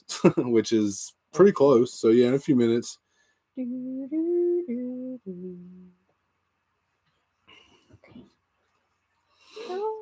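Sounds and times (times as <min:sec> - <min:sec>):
person humming: 0:03.6 - 0:06.0.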